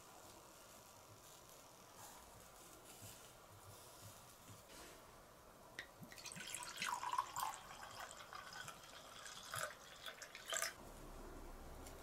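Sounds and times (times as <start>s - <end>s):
liquid pouring into a cup: 6.1s - 10.8s.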